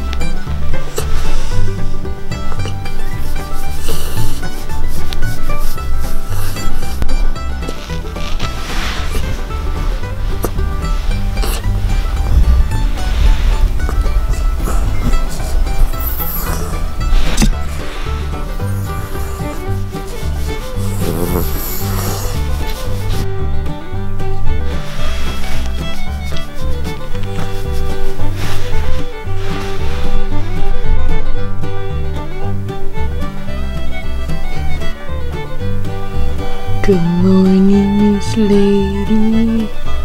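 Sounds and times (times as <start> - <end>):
background music: 0.0 - 40.0
hand rubbing dog fur: 2.7 - 23.4, 24.6 - 30.4.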